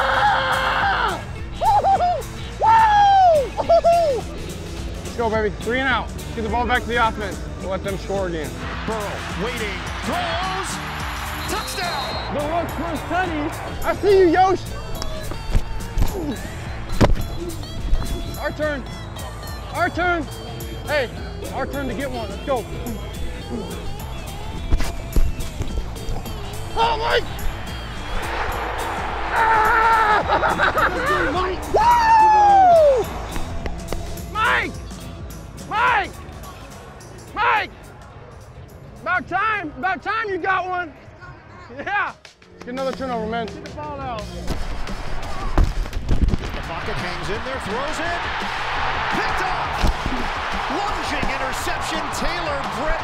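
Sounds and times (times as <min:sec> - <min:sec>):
man yelling and laughing: 0:00.0 - 0:04.3, 0:29.4 - 0:33.0
background music with beat: 0:00.0 - 0:39.0, 0:42.0 - 0:53.0
stadium crowd noise: 0:06.5 - 0:53.0
voices shouting: 0:08.3 - 0:34.8, 0:46.6 - 0:53.0.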